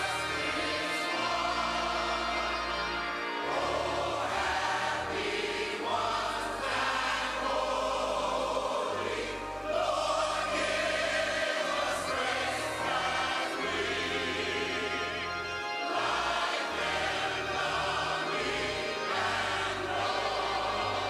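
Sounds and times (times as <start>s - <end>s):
choir singing a hymn: 0.0s - 21.0s
organ: 0.0s - 21.0s.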